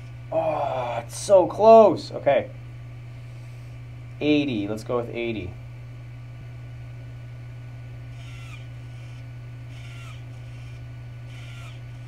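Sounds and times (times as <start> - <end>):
steady electrical hum: 0.0 - 12.0
servo motor whirring: 8.1 - 12.0.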